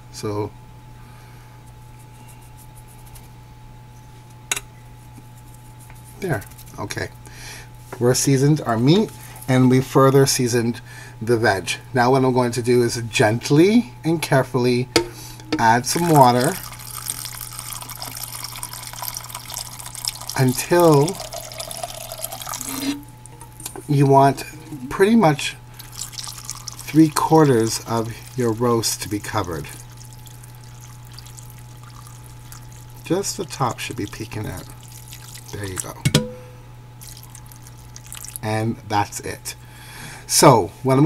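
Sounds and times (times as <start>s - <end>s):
steady low hum: 0.0s - 41.0s
water pouring into roasting pan: 15.9s - 23.0s, 25.8s - 36.0s, 37.0s - 38.4s.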